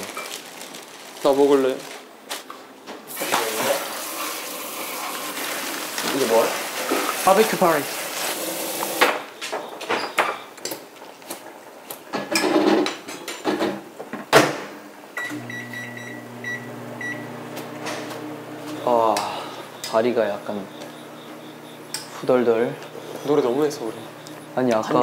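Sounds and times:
dishes and cupboards clattering: 12.1s - 14.6s
steady low hum: 15.7s - 25.0s.

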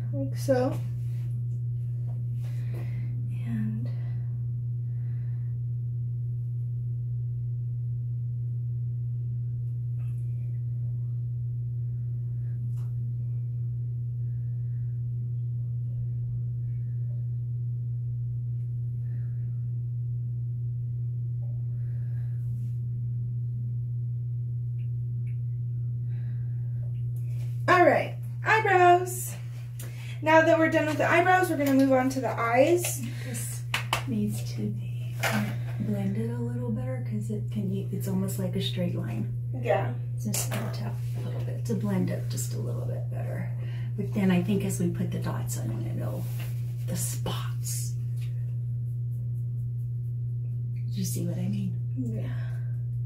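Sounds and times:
steady low hum: 0.0s - 53.0s.

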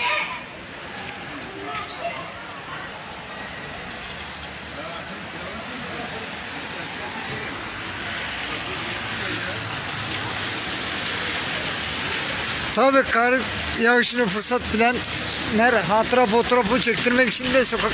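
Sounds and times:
faint voices: 0.0s - 17.9s
wet snow falling on street: 0.0s - 17.9s.

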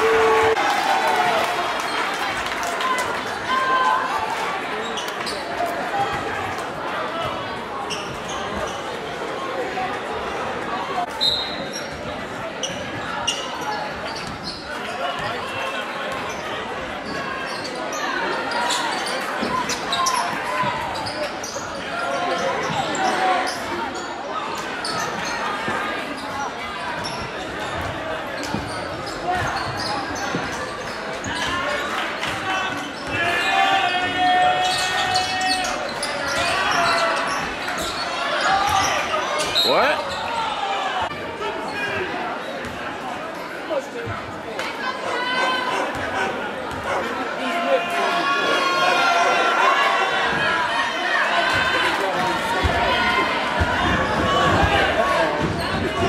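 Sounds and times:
shouts echoing: 0.0s - 8.4s, 14.9s - 56.0s
crowd chatter: 0.0s - 56.0s.

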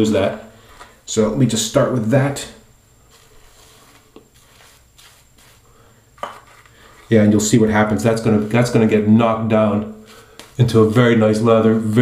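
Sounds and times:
wet shaving brush brushing: 3.1s - 5.7s.

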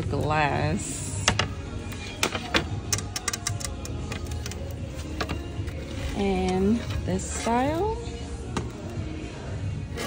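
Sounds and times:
store background hum: 0.0s - 10.0s.

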